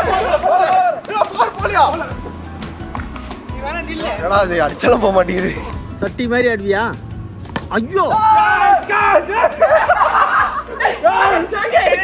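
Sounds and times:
voices shouting: 0:00.0 - 0:02.3, 0:07.8 - 0:12.0
background music: 0:00.0 - 0:12.0
cricket bat striking ball: 0:07.4 - 0:07.8.

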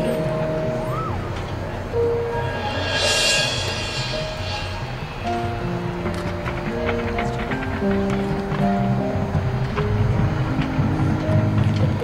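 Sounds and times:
marching band playing: 0:01.9 - 0:11.7.

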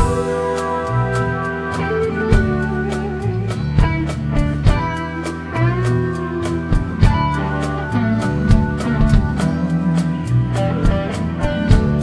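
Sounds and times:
bass: 0:00.0 - 0:12.0
drum kit beat: 0:00.0 - 0:12.0
electric guitar with bent notes: 0:00.0 - 0:12.0
keyboards: 0:00.0 - 0:12.0.

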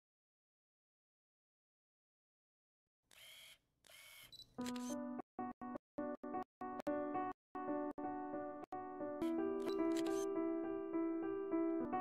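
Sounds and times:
camera shutter sound effect: 0:03.1 - 0:05.0, 0:09.6 - 0:10.3
chopped keyboard music: 0:04.8 - 0:12.0.

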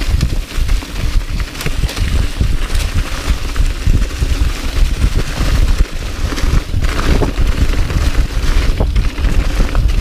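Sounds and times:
bike rattling and clicking: 0:00.0 - 0:10.0
bike tyres hissing over leaves: 0:00.0 - 0:10.0
wind buffeting microphone: 0:00.0 - 0:10.0.

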